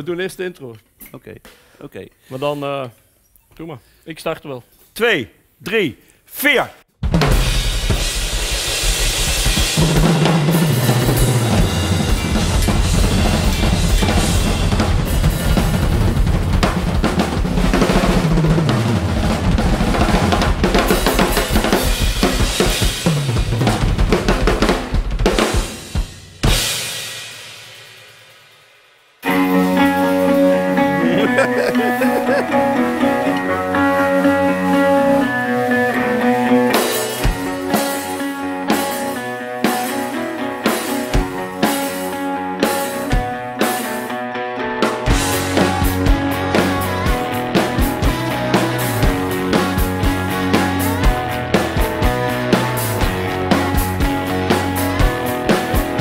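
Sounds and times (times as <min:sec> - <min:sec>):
drum kits playing hard: 0:07.0 - 0:28.4, 0:29.2 - 0:44.2, 0:44.8 - 0:56.0
rock band with guitar and bass: 0:09.1 - 0:25.5, 0:29.2 - 0:56.0.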